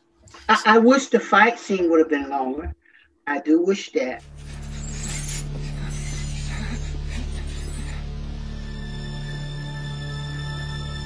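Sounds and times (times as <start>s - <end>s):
metallic scraping and creaks: 4.2s - 9.2s
low droning hum: 4.2s - 11.0s.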